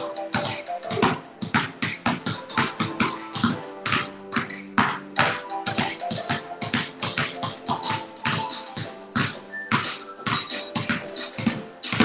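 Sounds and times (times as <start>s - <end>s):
background music: 0.0s - 12.0s
basketballs bouncing on concrete: 0.0s - 12.0s.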